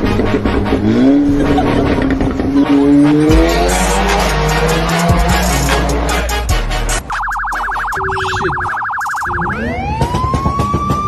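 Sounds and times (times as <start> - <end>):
electronic siren yelp and wail: 7.0 - 11.0.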